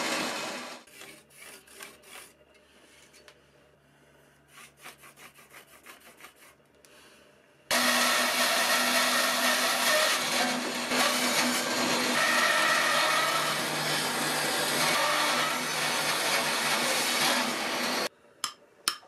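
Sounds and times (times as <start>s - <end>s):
bandsaw cutting wood: 0.0s - 0.9s, 7.7s - 18.1s.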